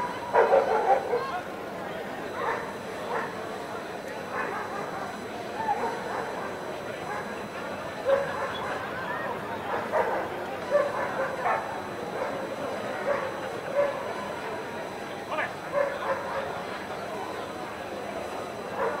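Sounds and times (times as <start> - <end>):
murmur of voices: 0.0 - 19.0.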